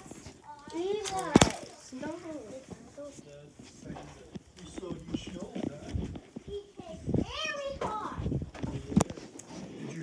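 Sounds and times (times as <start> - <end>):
children's high-pitched voices: 0.0 - 3.2, 6.4 - 8.4.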